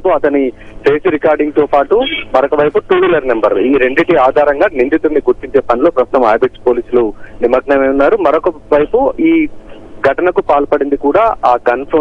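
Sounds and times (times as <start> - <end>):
person talking over telephone: 0.0 - 12.0.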